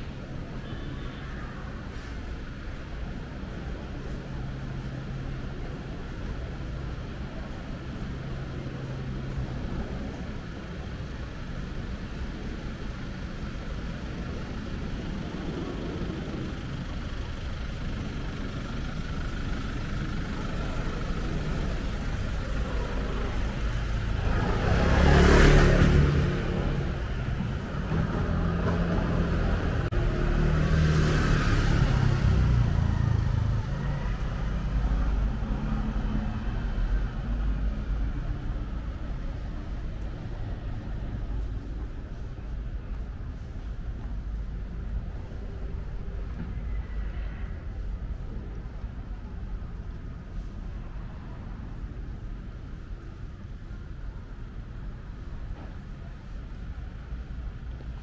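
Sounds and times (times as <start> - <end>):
vehicle engine rumble: 0.0 - 58.0
vehicle passing: 20.2 - 42.5.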